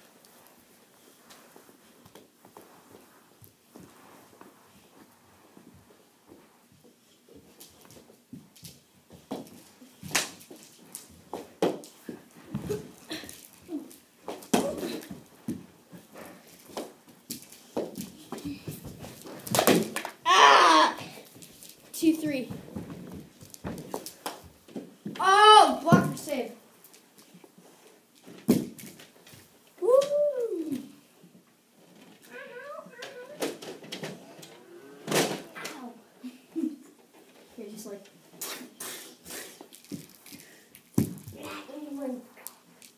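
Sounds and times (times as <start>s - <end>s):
children yelling: 20.3s - 21.1s, 25.2s - 25.8s.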